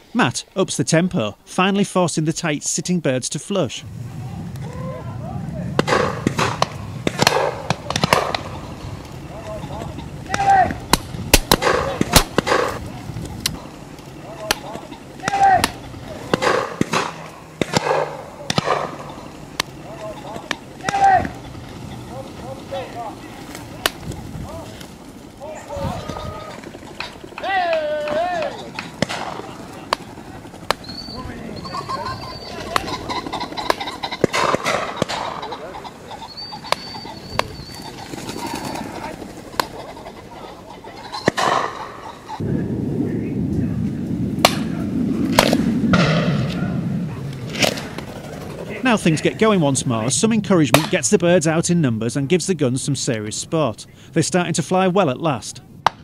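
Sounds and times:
people calling out short cries: 0:09.2 - 0:10.9, 0:14.1 - 0:16.3, 0:19.3 - 0:23.8, 0:25.4 - 0:26.8, 0:27.4 - 0:28.8.

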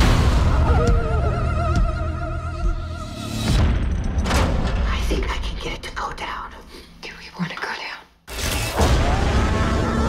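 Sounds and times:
person whispering: 0:04.8 - 0:08.2.

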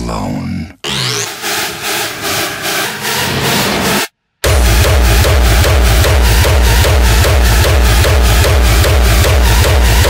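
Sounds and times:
harsh pulsing synth: 0:00.9 - 0:10.0.

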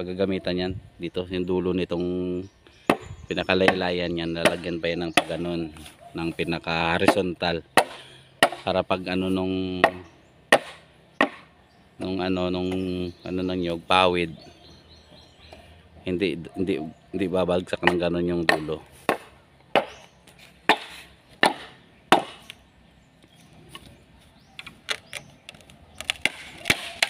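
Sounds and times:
blade chopping bamboo: 0:04.4 - 0:05.5, 0:07.0 - 0:08.7, 0:09.8 - 0:11.5, 0:17.8 - 0:20.0, 0:20.7 - 0:22.6, 0:24.9 - 0:27.0.

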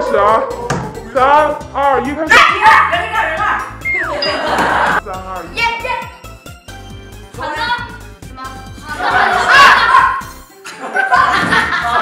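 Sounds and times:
background music: 0:00.0 - 0:12.0
boys shouting excitedly: 0:02.2 - 0:03.8, 0:09.0 - 0:10.3
falling whistle: 0:03.8 - 0:04.4.

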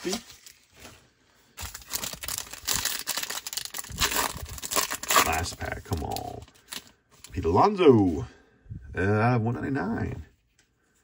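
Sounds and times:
foil wrapper crinkling: 0:00.0 - 0:07.4.

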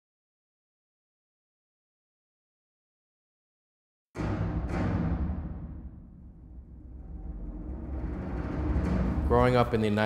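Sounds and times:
low orchestral drone: 0:06.4 - 0:10.0.

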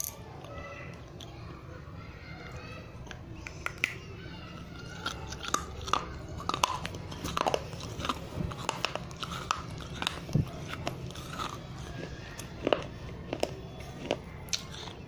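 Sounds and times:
clay crunching between teeth: 0:04.6 - 0:15.0.

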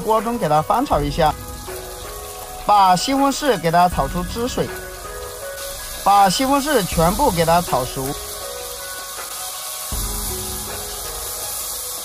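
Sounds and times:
background music: 0:00.0 - 0:12.0
tomatoes sizzling in oil: 0:00.0 - 0:12.0.

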